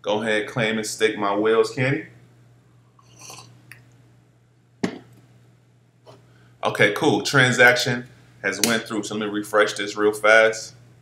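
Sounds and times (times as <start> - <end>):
sip from a mug: 3.0 - 3.8
mug set down on desk: 4.8 - 5.1.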